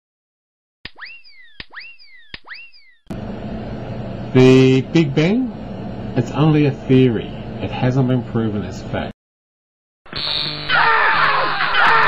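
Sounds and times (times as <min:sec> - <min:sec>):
low electrical hum: 0:03.1 - 0:09.1.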